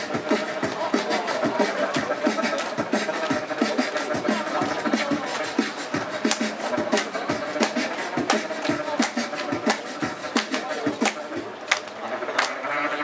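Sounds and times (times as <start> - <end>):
beatboxing kick and snare: 0.0 - 13.0.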